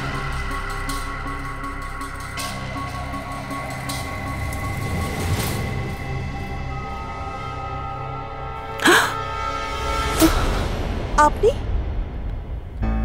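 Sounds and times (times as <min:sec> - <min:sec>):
tense dramatic score: 0:00.0 - 0:13.0.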